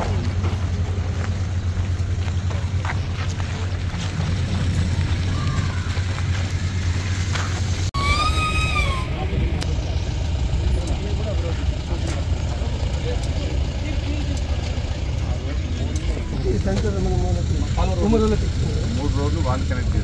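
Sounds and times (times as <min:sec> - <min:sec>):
steady low rumble: 0:00.0 - 0:08.0, 0:09.0 - 0:20.0
whistle-like tone rising and falling: 0:08.0 - 0:09.4
group talking indistinctly: 0:08.0 - 0:20.0.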